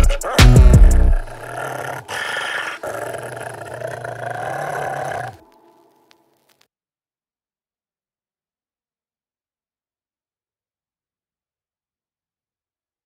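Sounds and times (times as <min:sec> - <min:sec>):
dog growling: 0:00.0 - 0:05.5.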